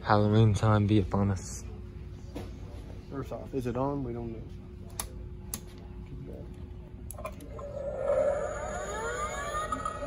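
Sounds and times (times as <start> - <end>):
electronic spooky sound effect: 7.6 - 10.0.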